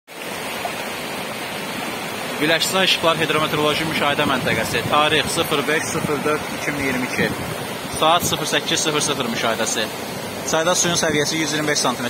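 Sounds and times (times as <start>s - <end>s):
river rushing over rapids: 0.1s - 12.0s.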